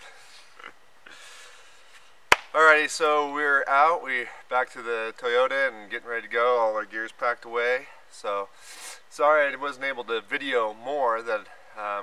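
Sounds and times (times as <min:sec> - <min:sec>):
low background hiss: 0:00.0 - 0:12.0
short breath puff: 0:08.6 - 0:09.0.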